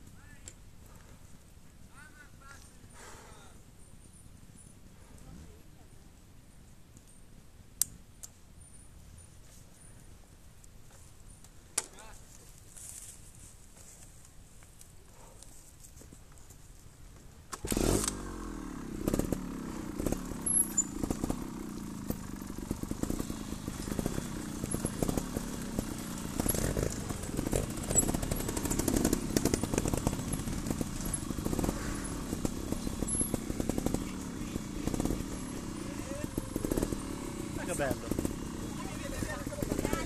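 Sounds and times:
motorcycle engine revving: 17.6 - 40.0.

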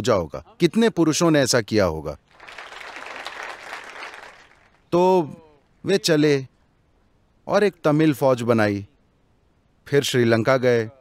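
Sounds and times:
audience applauding: 2.3 - 4.8.

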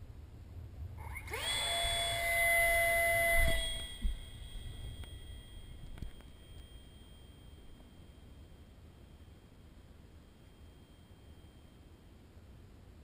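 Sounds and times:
electric ducted fan whine: 0.0 - 13.0.

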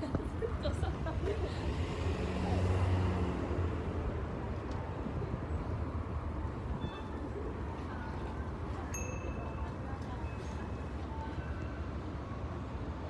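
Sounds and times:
low rumble of road traffic: 0.0 - 13.0
motor vehicle passing: 1.3 - 4.4.

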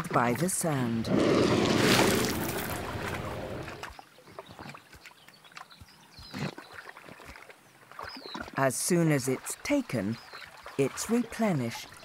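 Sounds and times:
elephant rumbling: 1.0 - 3.9.

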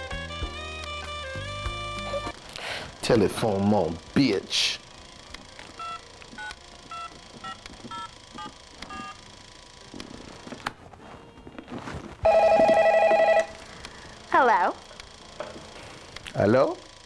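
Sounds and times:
electronic telephone ring: 5.8 - 9.3, 12.2 - 13.6.

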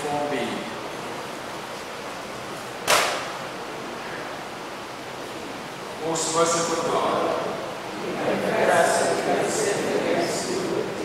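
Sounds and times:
church room noise hiss: 0.0 - 11.0
sharp knock: 2.9 - 3.3.

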